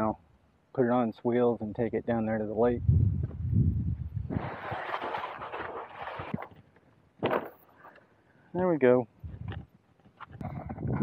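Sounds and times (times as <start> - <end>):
cart wheels rolling and scraping: 4.3 - 6.6.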